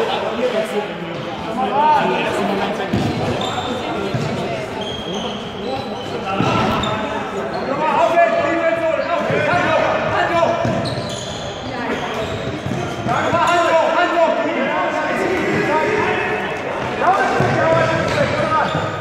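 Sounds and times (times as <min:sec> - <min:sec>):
players calling out: 0:00.6 - 0:19.0
shoes squeaking on hall floor: 0:02.2 - 0:14.2, 0:15.0 - 0:19.0.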